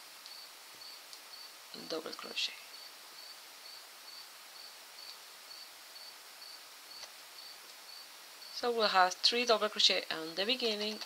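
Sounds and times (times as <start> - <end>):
insect chirping: 0.0 - 9.0.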